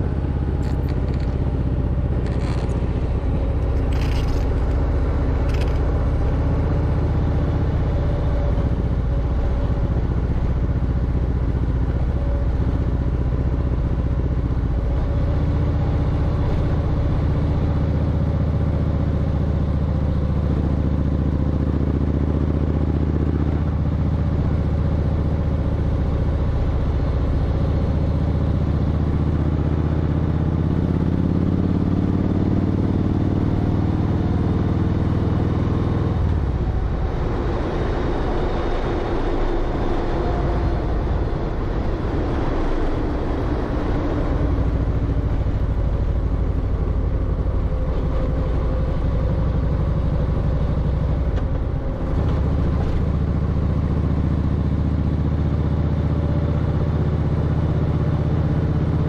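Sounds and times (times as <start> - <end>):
motorcycle engine running: 0.0 - 59.0
wind and road noise: 0.0 - 59.0.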